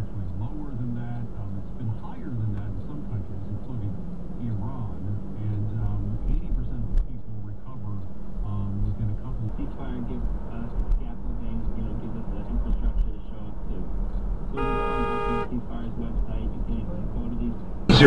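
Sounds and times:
road rumble inside car: 0.0 - 18.0
car horn honk: 14.6 - 15.6.

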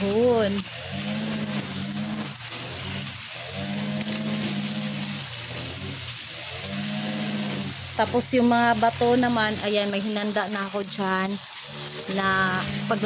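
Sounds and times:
small engine droning: 0.0 - 13.0
water stream hissing: 0.0 - 13.0.

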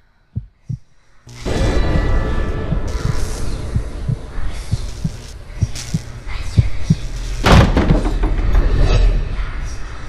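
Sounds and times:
heartbeat thumps: 0.4 - 0.9, 2.6 - 8.4
low rumble: 0.4 - 10.0.

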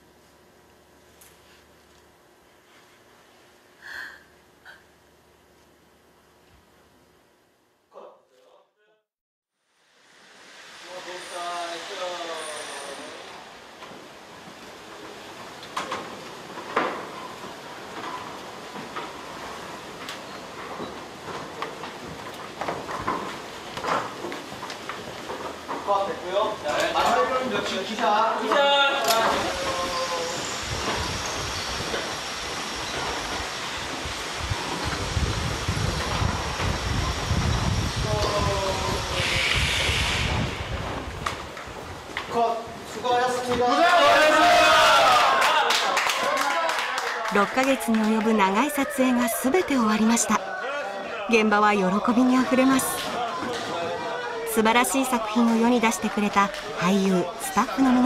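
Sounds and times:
film set background hiss: 9.6 - 58.0
dolly wheels rolling on track: 13.8 - 27.9, 29.3 - 38.5
short hiss: 39.1 - 41.4
person speaking: 47.3 - 50.4, 51.3 - 53.1, 54.5 - 58.0.

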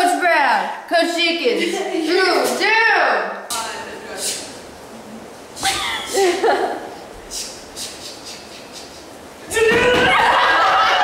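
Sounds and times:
faint room noise: 0.0 - 11.0.

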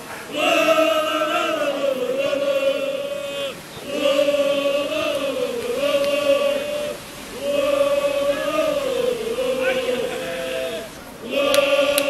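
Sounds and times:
football supporters chanting: 0.0 - 12.0.

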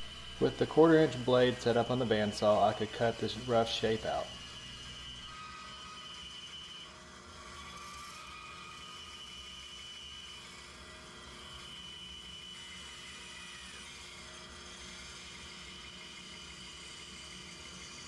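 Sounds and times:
bandsaw cutting wood: 0.0 - 4.4.

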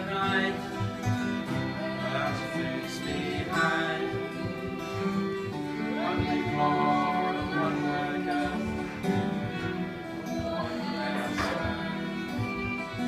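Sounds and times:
acoustic guitar strummed: 0.0 - 13.0
fiddle bowing melody: 0.0 - 13.0.

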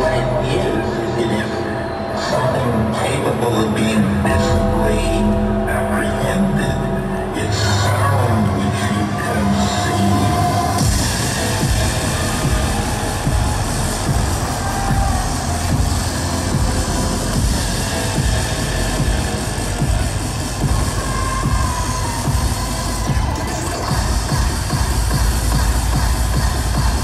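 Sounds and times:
loud electronic dance music: 0.0 - 27.0.

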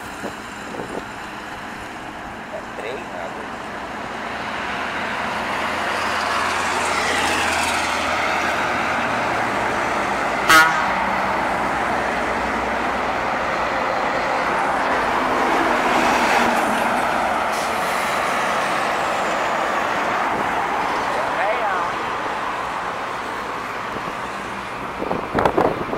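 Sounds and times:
trucks passing: 0.0 - 25.9
truck horn toot: 10.4 - 11.1.

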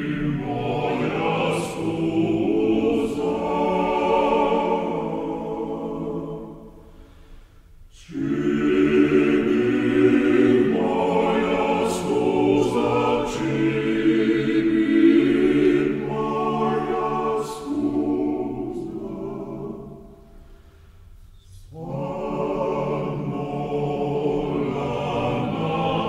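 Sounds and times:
male choir singing a cappella: 0.0 - 6.9, 7.9 - 20.2, 21.4 - 26.0.

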